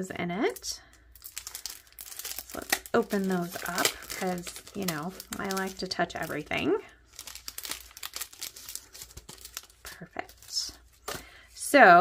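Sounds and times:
plastic packaging crinkling: 0.5 - 11.4.

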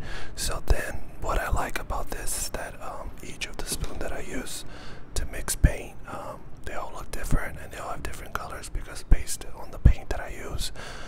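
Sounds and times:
man whispering: 0.4 - 10.8.

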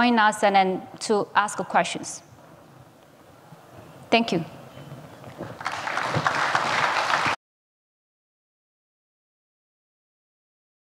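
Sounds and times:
audience applauding: 5.4 - 7.4.

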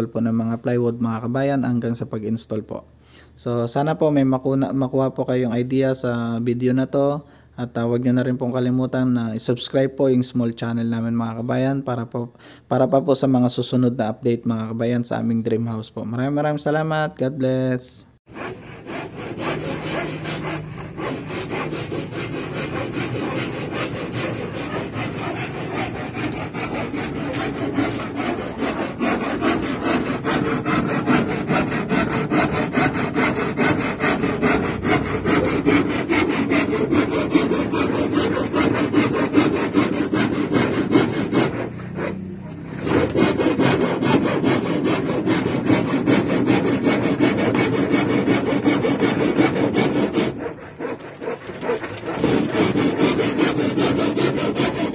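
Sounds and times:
saw cutting through plywood: 18.3 - 54.9.

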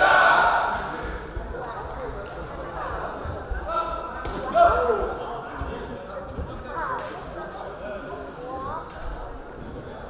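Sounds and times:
people shouting: 0.0 - 0.8.

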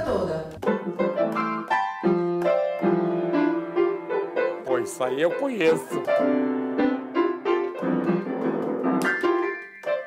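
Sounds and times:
electronic keyboard piano melody: 0.0 - 10.0.

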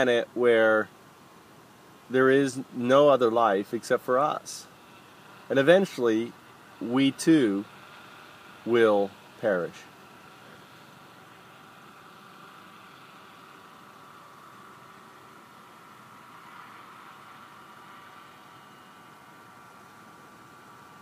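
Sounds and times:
distant helicopter hum and whine: 0.0 - 21.0.

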